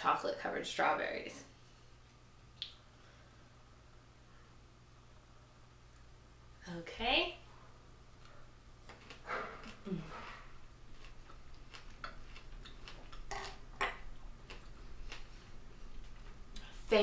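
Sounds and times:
quiet chewing: 8.1s - 16.8s.

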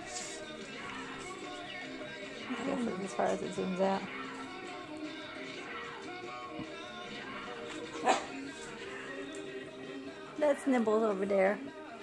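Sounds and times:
faint background music: 0.0s - 12.0s
dog barking: 8.0s - 8.4s.

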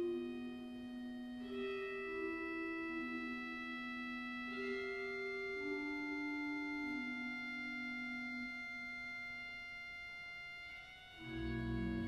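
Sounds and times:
pipe organ sustained chord: 0.0s - 12.0s.

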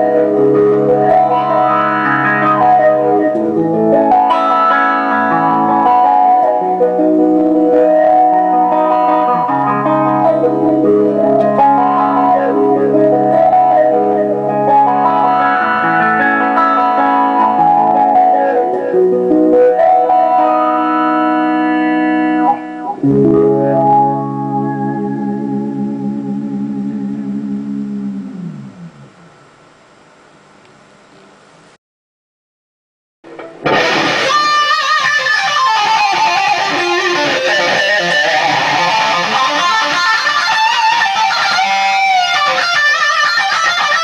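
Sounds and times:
electric guitar with wah pedal: 0.0s - 29.5s, 33.3s - 44.0s.

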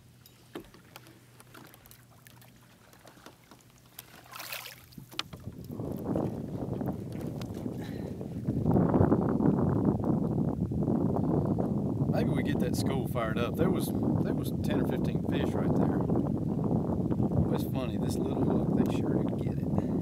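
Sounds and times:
wind buffeting the microphone: 0.6s - 20.0s
brief splash: 4.0s - 5.1s.

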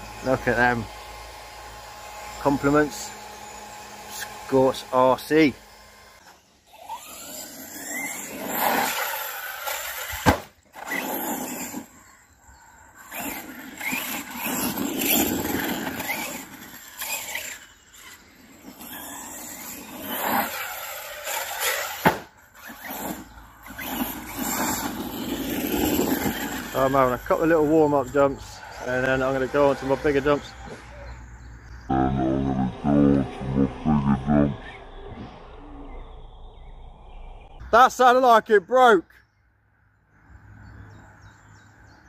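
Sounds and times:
electric rc car motors whining: 0.0s - 37.5s.

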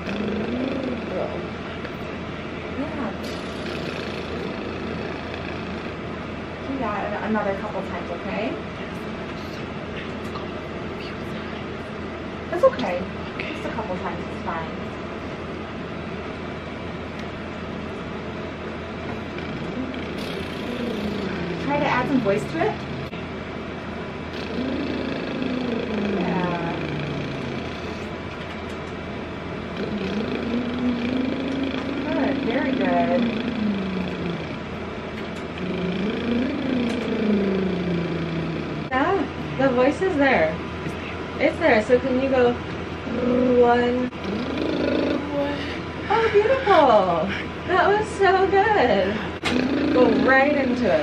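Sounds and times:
room noise rumble: 0.0s - 51.0s.

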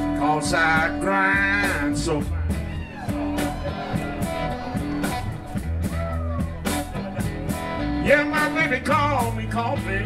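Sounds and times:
electric guitar: 0.0s - 10.0s
live blues band: 0.0s - 10.0s.

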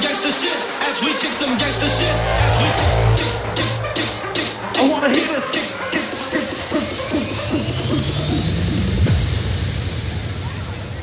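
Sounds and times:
electronic dance music build-up: 0.9s - 9.9s
heavy low hit: 1.5s - 5.6s.

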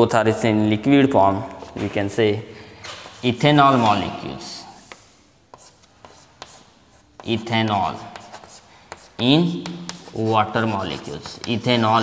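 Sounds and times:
chalk scratching on chalkboard: 3.0s - 12.0s
chalk tapping on board: 4.9s - 12.0s.

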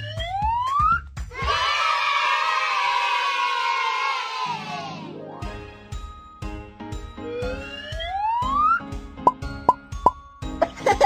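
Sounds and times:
background music: 4.2s - 11.0s
child giggling: 10.6s - 11.0s.

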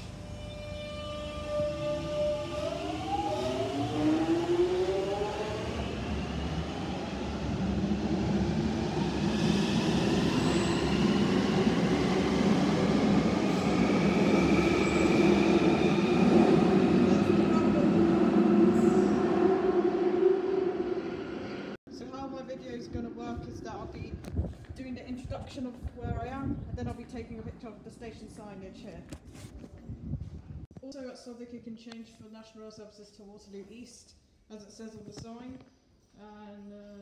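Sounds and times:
train rumbling along rails: 0.0s - 24.3s.

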